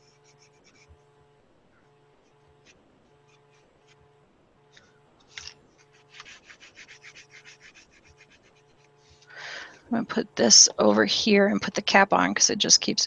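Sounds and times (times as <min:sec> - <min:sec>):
hand rubbing paint on paper: 0:00.0 - 0:01.1, 0:05.3 - 0:09.2.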